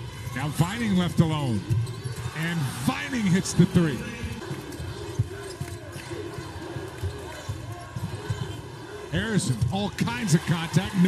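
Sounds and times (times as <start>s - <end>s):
arena crowd noise: 0.0s - 11.0s
sneakers squeaking on floor: 1.6s - 2.4s, 4.4s - 8.7s.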